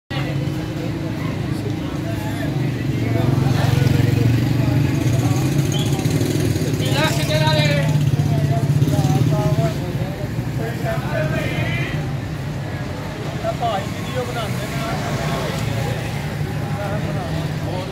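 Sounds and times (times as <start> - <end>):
indistinct voices: 0.1 - 17.9.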